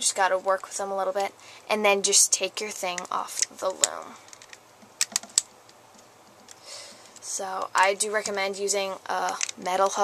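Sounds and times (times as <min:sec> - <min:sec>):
faint handling noise: 0:02.8 - 0:08.6
sharp clicks of rubber bands on pegs: 0:02.9 - 0:07.3.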